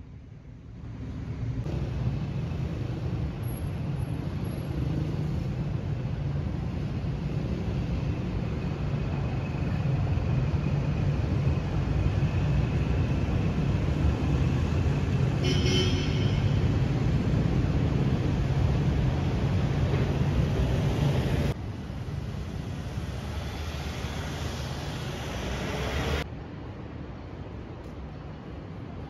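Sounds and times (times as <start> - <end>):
road traffic: 0.0 - 29.0.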